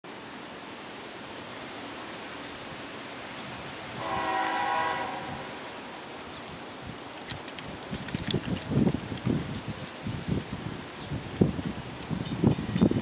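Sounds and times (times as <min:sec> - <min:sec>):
steady hiss: 0:00.1 - 0:13.0
locomotive air horn blast: 0:04.0 - 0:05.7.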